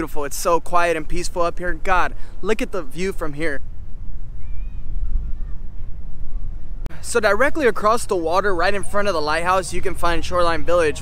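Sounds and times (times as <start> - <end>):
wind buffeting microphone: 0.0 - 11.0
faint high chirp: 4.4 - 6.8.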